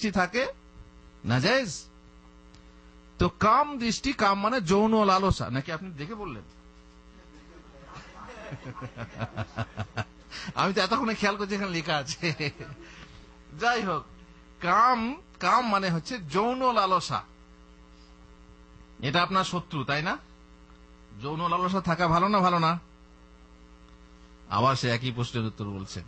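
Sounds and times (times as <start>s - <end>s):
electrical mains hum: 0.0s - 26.0s
man speaking: 1.2s - 1.9s, 3.2s - 6.5s, 10.4s - 17.3s, 19.0s - 20.2s, 21.2s - 22.8s, 24.5s - 26.0s.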